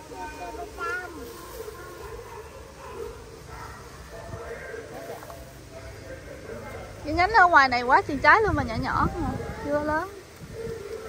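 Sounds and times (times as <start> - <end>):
faint talking: 0.0 - 7.3.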